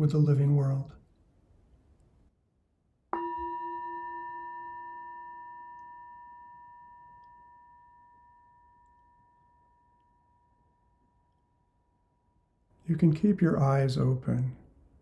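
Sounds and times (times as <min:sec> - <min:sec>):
meditation bell ringing: 0:03.1 - 0:12.7.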